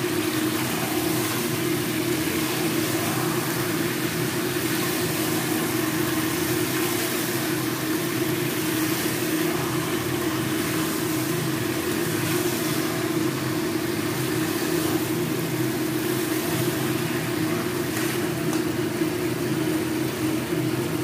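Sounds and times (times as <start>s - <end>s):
food frying hiss: 0.0s - 21.0s
steady hum: 0.0s - 21.0s.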